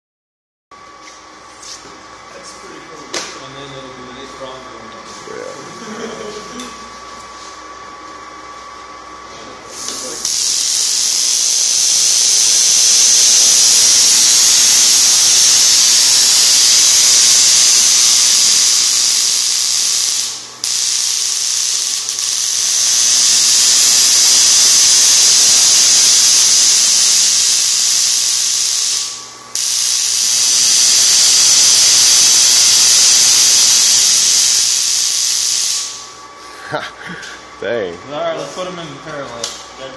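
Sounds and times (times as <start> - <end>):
tesla coil hissing: 9.6 - 36.2.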